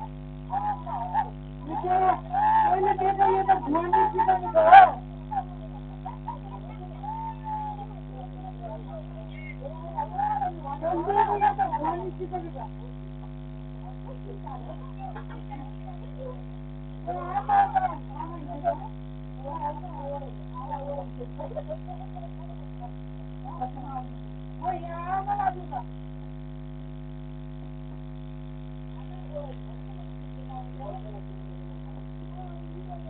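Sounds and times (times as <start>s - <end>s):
person calling out: 0.0s - 12.9s, 17.1s - 22.9s
electrical mains hum: 0.0s - 33.0s.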